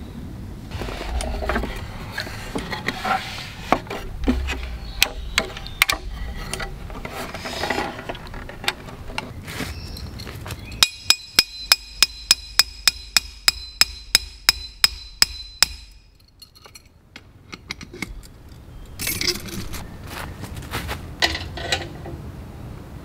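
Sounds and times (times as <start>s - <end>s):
hammer blows on metal pole: 10.8s - 16.1s.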